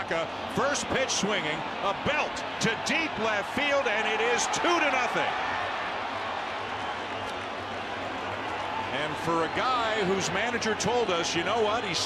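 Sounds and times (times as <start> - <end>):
stadium crowd hubbub: 0.0 - 12.0.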